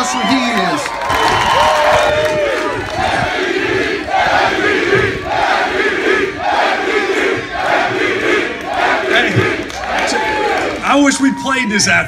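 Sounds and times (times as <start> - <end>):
crowd chanting in unison: 2.4 - 10.8.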